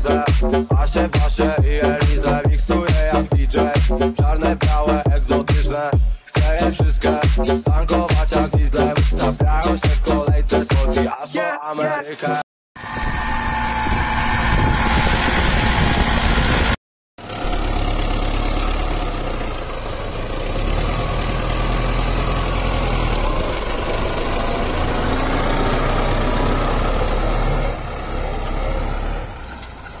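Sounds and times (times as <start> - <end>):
tractor diesel engine running: 0.0 - 10.2, 12.8 - 30.0.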